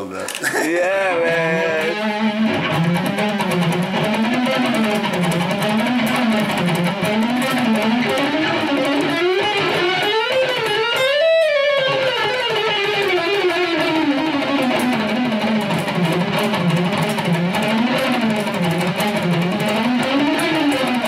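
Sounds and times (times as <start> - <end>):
electric guitar lead note: 0.7 - 21.0.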